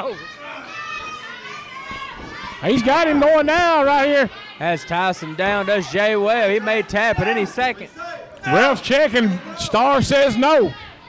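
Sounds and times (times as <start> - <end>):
children's high voices: 0.0 - 3.1, 10.4 - 11.0
crowd chattering and calling out: 0.0 - 11.0.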